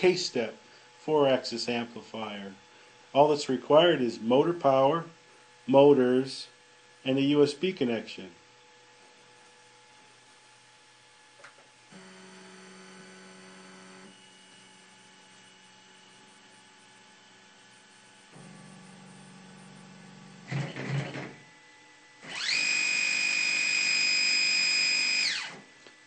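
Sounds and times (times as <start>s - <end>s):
motors high-pitched whine: 9.4s - 26.0s
stepper motors humming: 11.9s - 26.0s.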